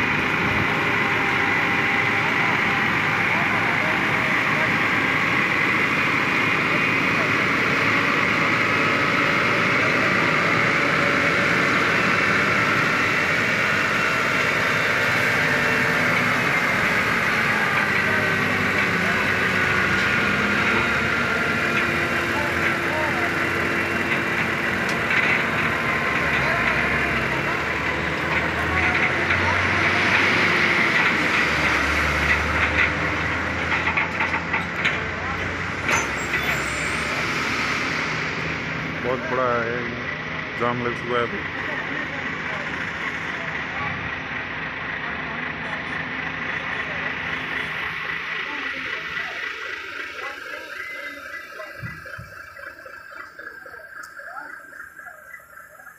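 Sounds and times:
diesel truck engines running: 0.0 - 55.9
people's voices: 0.0 - 55.9.

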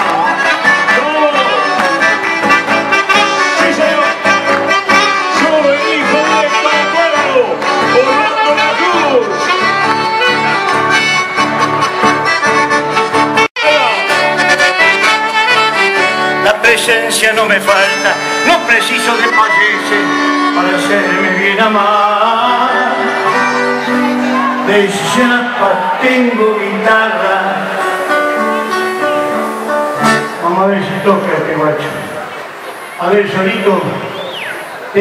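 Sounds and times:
live band led by accordion: 0.0 - 25.2.

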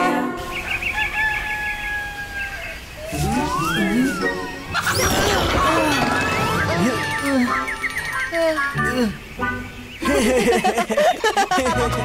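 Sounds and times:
rooster crowing: 0.8 - 2.8.

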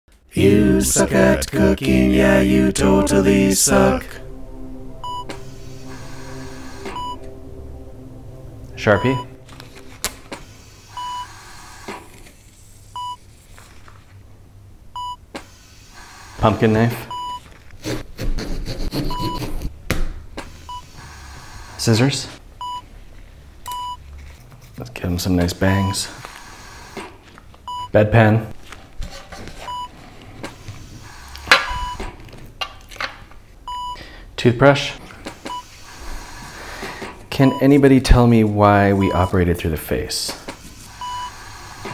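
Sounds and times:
low steady drone: 0.2 - 14.9
heart monitor beep: 5.0 - 5.5, 6.8 - 7.2, 10.9 - 11.4, 15.0 - 15.2, 17.1 - 17.4, 19.1 - 19.5, 22.6 - 22.9, 23.7 - 24.0, 27.7 - 28.0, 29.6 - 29.9, 31.7 - 32.0, 33.7 - 34.0, 35.5 - 35.7, 39.0 - 39.4, 41.0 - 41.4.

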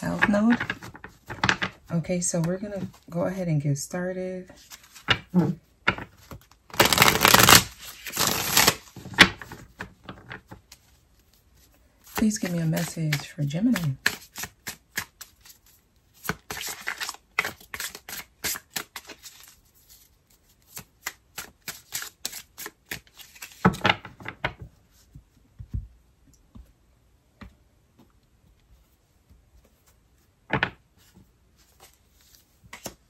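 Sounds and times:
cards being shuffled: 0.0 - 3.1, 4.6 - 24.3, 31.0 - 33.0.

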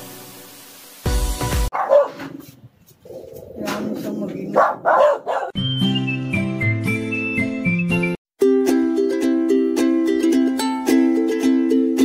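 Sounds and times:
dog barking: 1.7 - 2.4, 4.5 - 5.6.

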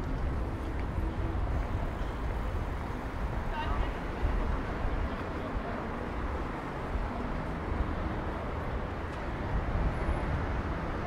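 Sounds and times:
road traffic rumble: 0.0 - 11.0.

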